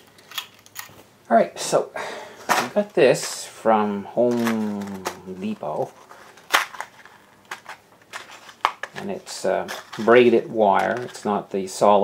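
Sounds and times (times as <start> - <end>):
packaging rustling: 4.2 - 11.5
card packaging clicking: 4.3 - 10.2.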